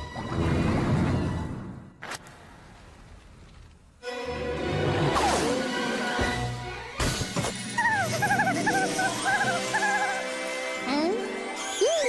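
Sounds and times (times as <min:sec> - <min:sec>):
background music: 0:04.0 - 0:12.0
cartoon character whimpering: 0:07.8 - 0:10.2.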